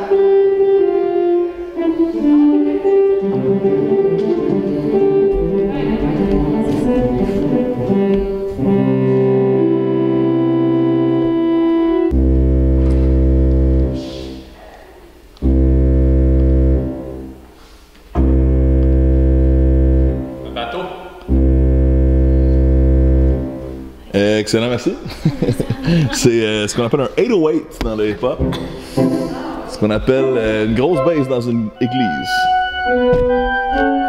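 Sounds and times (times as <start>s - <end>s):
church organ playing chords: 0.0s - 14.6s, 15.4s - 24.1s, 30.2s - 34.0s.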